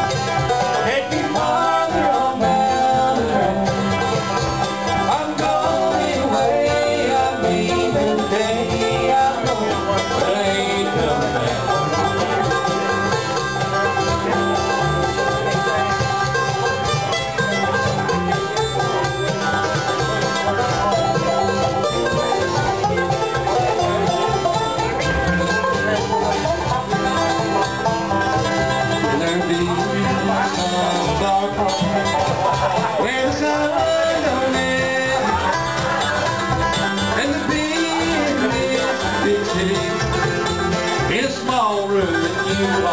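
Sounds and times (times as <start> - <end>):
bluegrass band playing: 0.0 - 42.9.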